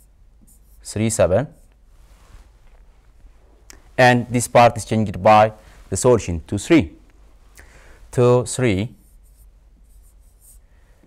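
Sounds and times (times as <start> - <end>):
pen scratching on screen: 0.0 - 0.9, 9.0 - 10.7.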